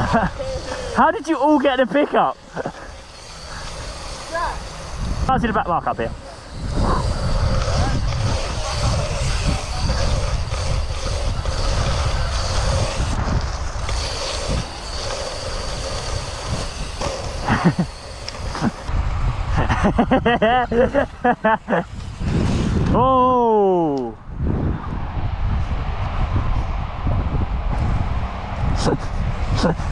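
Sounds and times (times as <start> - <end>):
person laughing and calling out: 0.0 - 1.2, 1.9 - 3.0, 17.4 - 18.9, 19.5 - 22.0, 23.0 - 24.2, 28.8 - 29.9
bike tyre rumble: 0.0 - 29.9
wind buffeting microphone: 0.0 - 29.9.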